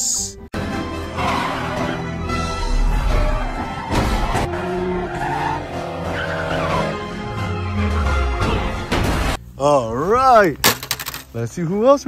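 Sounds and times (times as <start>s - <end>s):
tyres skidding: 0.6s - 8.9s
race car engines revving: 1.1s - 7.8s.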